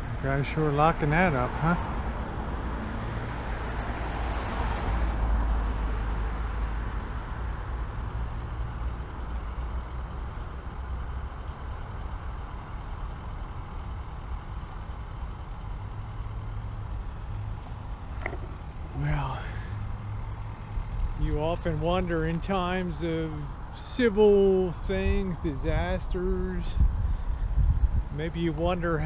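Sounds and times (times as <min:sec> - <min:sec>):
vehicle engine rumbling: 0:00.0 - 0:29.0.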